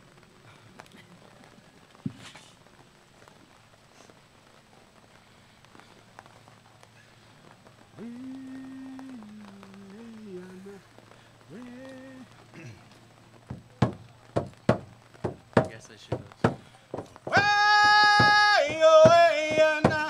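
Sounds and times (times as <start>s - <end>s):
light rain patter: 0.0s - 20.0s
sharp knock: 13.5s - 20.0s.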